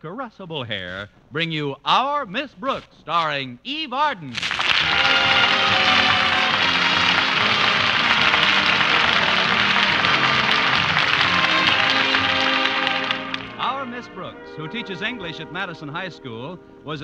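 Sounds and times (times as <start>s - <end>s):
orchestral theme music: 4.5s - 17.0s
narrator speaking: 13.6s - 17.0s.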